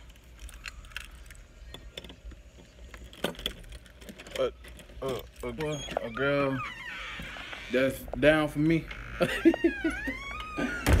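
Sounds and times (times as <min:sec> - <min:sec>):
small metallic rattles: 0:00.0 - 0:06.2.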